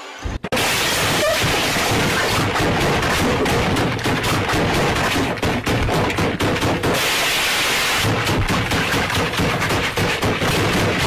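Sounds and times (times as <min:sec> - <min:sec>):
hissing crash: 0:00.2 - 0:05.2, 0:06.6 - 0:11.0.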